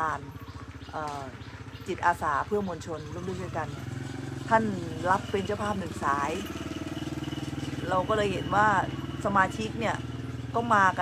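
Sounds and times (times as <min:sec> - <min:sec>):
engine running steadily: 0:00.0 - 0:11.0.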